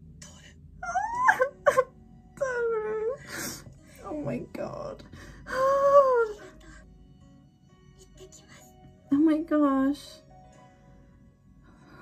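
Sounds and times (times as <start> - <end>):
woman crying with wailing sobs: 0.8 - 3.7, 5.2 - 6.9.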